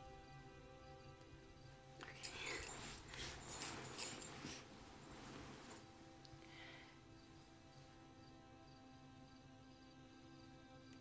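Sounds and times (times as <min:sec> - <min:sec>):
quiet film score: 0:00.0 - 0:11.0
close breathy rustling: 0:02.0 - 0:07.6.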